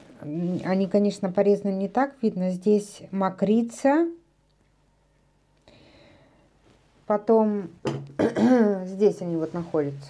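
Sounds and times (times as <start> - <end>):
faint soft rustle: 0.0 - 1.2, 6.6 - 7.1, 9.1 - 10.0.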